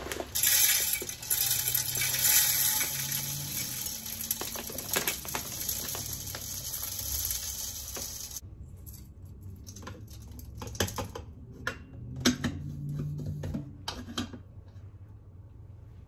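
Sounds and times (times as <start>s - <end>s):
bird seed pouring into feeder: 0.0s - 8.4s.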